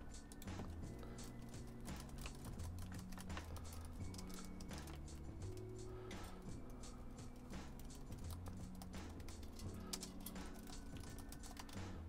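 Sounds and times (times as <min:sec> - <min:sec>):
faint keyboard typing: 0:00.0 - 0:12.0
quiet background music: 0:00.0 - 0:12.0.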